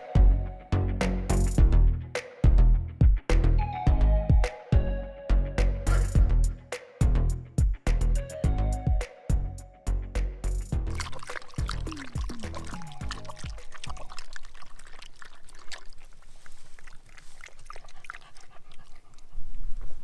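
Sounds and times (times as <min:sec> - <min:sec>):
upbeat background music: 0:00.0 - 0:14.0
water pouring into cup: 0:10.9 - 0:18.6
dog lapping water: 0:10.9 - 0:19.5.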